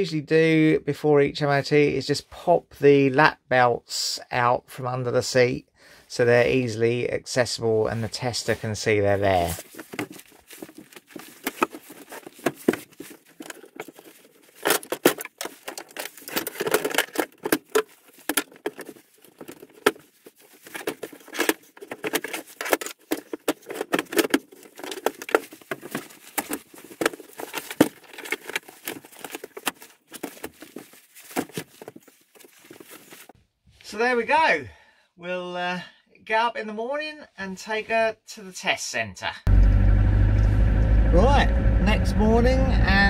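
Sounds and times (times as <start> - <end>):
seat belt webbing rustling: 9.1 - 33.4
metal buckles clicking and knocking: 9.6 - 33.3.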